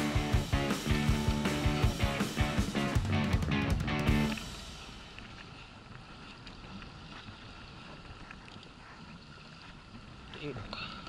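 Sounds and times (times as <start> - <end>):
background music: 0.0 - 5.0
water around boat: 0.0 - 11.0
faint wind: 4.2 - 11.0.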